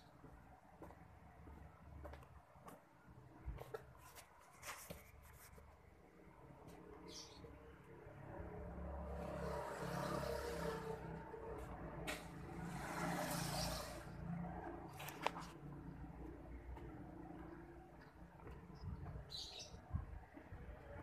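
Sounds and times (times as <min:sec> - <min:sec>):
vehicles passing on road: 0:00.0 - 0:04.4, 0:05.1 - 0:21.0.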